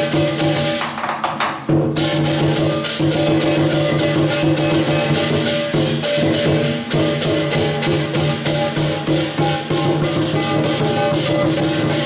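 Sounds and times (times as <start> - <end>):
cymbals clashing: 0.0 - 12.0
drum beating: 0.0 - 12.0.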